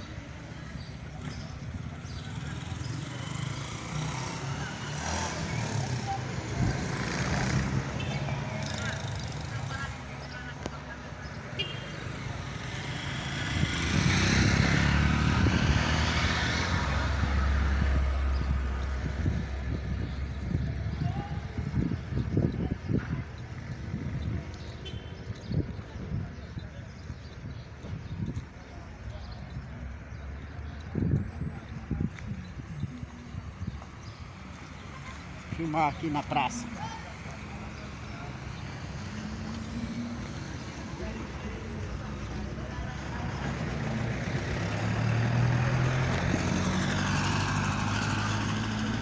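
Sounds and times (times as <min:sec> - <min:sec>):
motor vehicle passing: 0:02.0 - 0:11.4, 0:12.1 - 0:49.0
people talking: 0:08.2 - 0:12.4, 0:16.8 - 0:25.0, 0:27.9 - 0:47.4.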